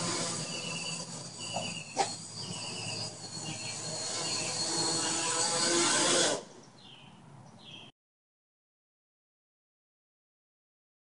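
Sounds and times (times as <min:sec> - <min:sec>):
quadcopter motors humming: 0:00.0 - 0:06.6
insects chirping: 0:00.3 - 0:05.3.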